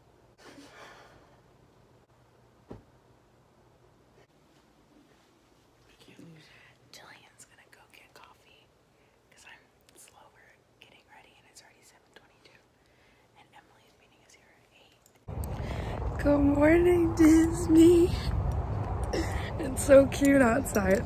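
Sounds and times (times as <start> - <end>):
women whispering: 5.9 - 8.7
loud outdoor sound: 15.3 - 21.0.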